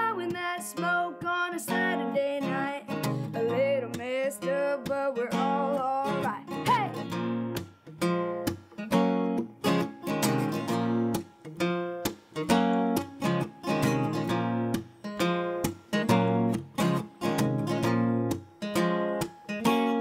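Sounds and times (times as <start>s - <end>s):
boy singing: 0.0s - 7.1s
acoustic guitar strumming: 0.0s - 20.0s.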